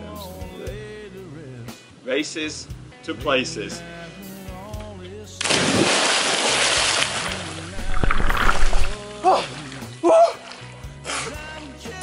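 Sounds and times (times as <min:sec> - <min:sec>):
body splashing into water: 0:05.4 - 0:09.0
rush of water: 0:05.4 - 0:09.0
swimmer thrashing and splashing: 0:05.4 - 0:09.0.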